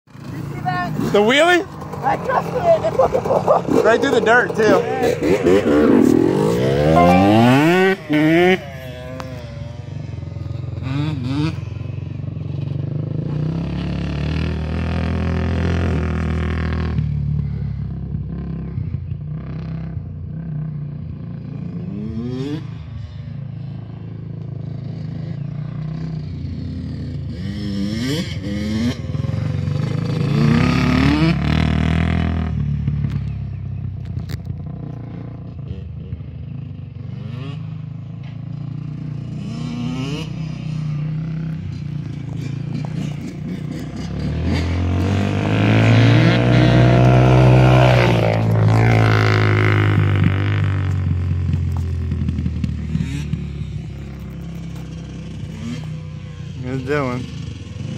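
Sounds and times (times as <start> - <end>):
quad and dirt bike engines: 0.0 - 57.9.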